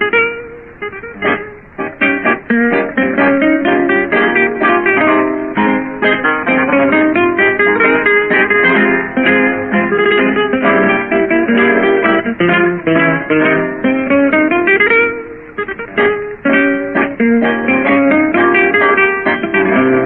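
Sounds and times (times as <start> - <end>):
acoustic guitars playing tango: 0.0 - 20.0.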